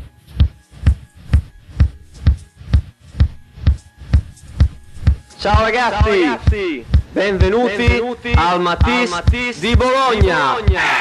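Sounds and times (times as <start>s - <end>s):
techno kick drum beat: 0.0s - 11.0s.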